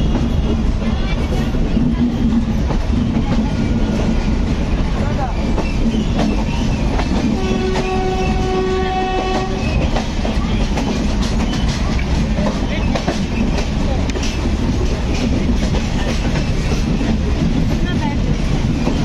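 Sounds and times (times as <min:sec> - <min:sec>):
train rumbling: 0:00.0 - 0:19.0
train horn: 0:07.2 - 0:09.9.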